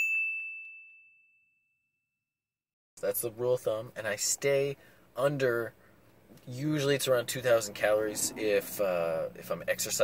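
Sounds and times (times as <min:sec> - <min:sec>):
bell-like ding: 0:00.0 - 0:02.0.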